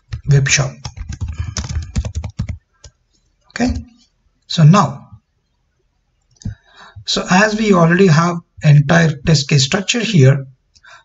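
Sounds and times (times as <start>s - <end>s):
computer keyboard typing: 0.0s - 3.0s.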